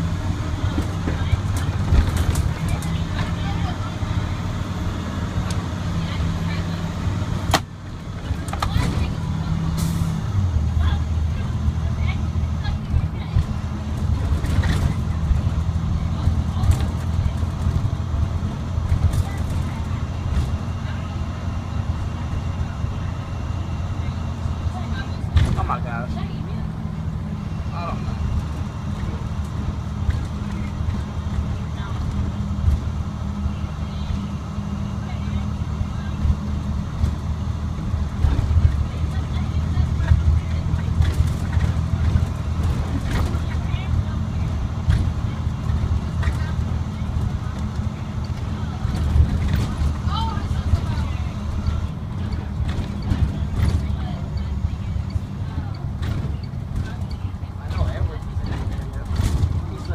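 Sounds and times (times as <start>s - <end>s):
bus body knocks and rattles: 0.0s - 3.9s, 7.4s - 9.8s, 10.8s - 21.1s, 24.0s - 27.2s, 28.3s - 33.1s, 35.2s - 59.9s
diesel engine drone in cab: 0.0s - 59.9s.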